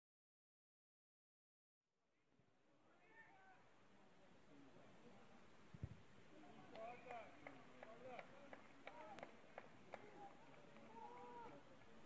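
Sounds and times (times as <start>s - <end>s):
faint outdoor ambience: 2.1s - 12.0s
distant shout: 2.9s - 3.7s, 6.4s - 12.0s.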